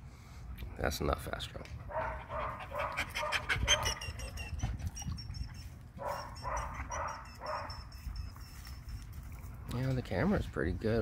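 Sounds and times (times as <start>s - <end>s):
dogs whining and grumbling: 1.9s - 9.4s.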